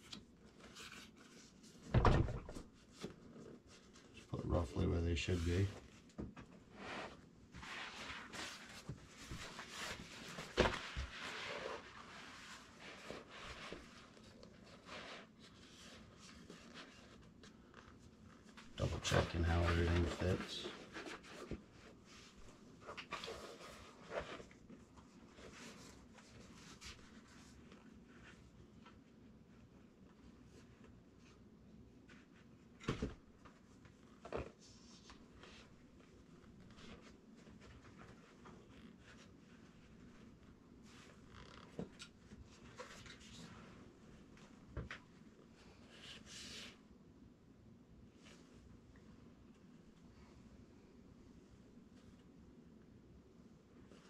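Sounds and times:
fabric rustling and rubbing: 0:05.3 - 0:46.8.

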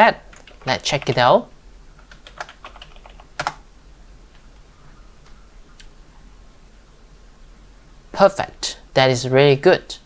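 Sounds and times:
computer keyboard typing: 0:00.3 - 0:01.4, 0:02.0 - 0:03.6.

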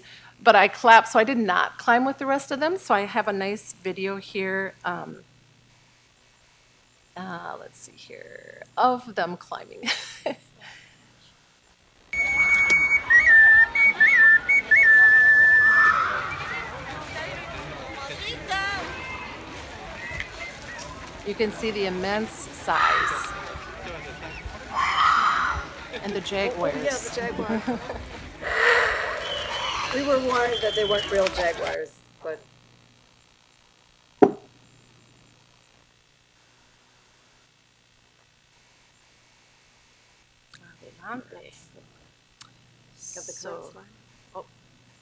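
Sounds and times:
faint low hum: 0:00.0 - 0:45.0
crowd noise: 0:12.1 - 0:31.8
shrill whistle tones: 0:12.2 - 0:16.6, 0:29.1 - 0:31.2
short thump: 0:34.2 - 0:34.5.

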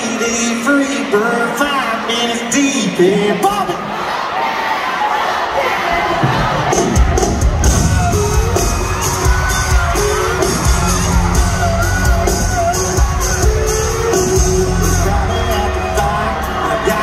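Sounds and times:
crowd cheering: 0:00.0 - 0:17.0
live country band playing: 0:06.2 - 0:17.0
person singing: 0:07.7 - 0:17.0.

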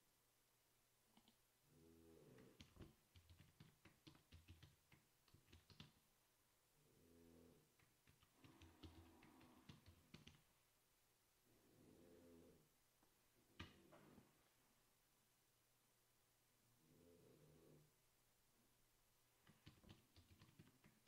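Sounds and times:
keyboard typing: 0:02.4 - 0:06.0, 0:07.8 - 0:10.5, 0:19.4 - 0:21.0.

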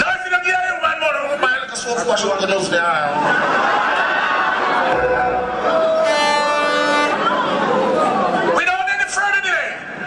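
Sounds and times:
overlapping chatter: 0:03.2 - 0:08.7.

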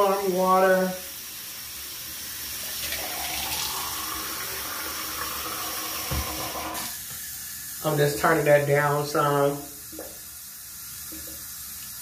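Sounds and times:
tap water running into sink: 0:01.2 - 0:07.2, 0:09.7 - 0:10.3, 0:11.0 - 0:12.0.

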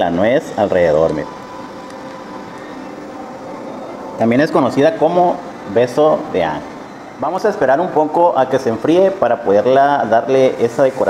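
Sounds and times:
faint steady tones: 0:00.0 - 0:11.0
mechanical hum and hiss: 0:00.0 - 0:11.0.

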